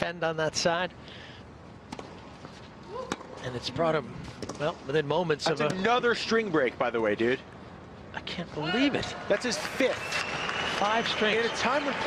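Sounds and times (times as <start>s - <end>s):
low steady stadium hush: 0.0s - 12.0s.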